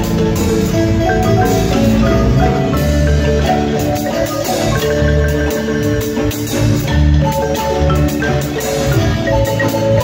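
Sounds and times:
electric bass guitar: 0.0s - 10.0s
marimba rolled notes: 0.0s - 10.0s.

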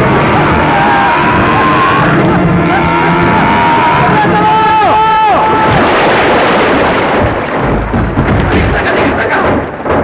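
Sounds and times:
deep rumble: 0.0s - 10.0s
heavy water splashing: 0.0s - 10.0s.

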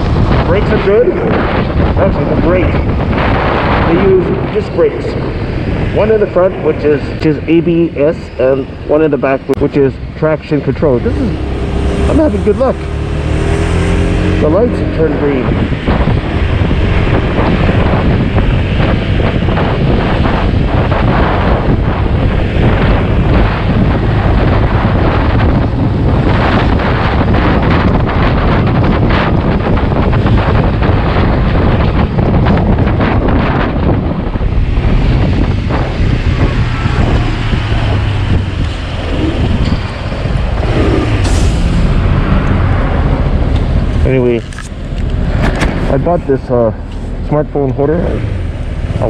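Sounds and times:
scooter road and engine noise: 0.0s - 49.0s
wind rushing over microphone: 0.0s - 49.0s.

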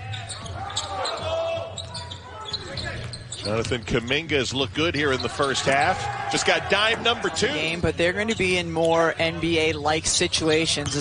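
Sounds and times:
voices ringing in a hall: 0.0s - 11.0s.

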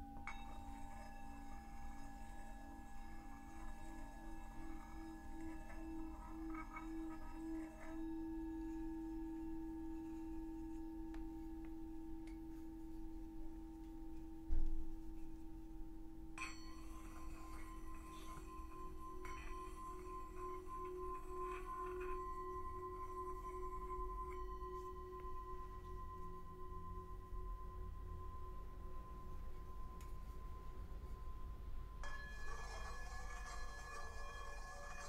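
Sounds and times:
singing bowls ringing: 0.0s - 35.0s.

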